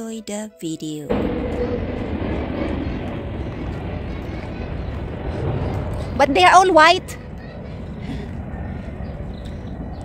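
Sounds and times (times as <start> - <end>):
low outdoor rumble: 1.1 - 10.0.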